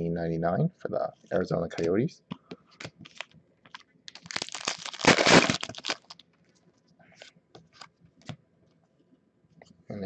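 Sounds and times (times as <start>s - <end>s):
card pack wrapper crinkling: 3.0s - 6.2s.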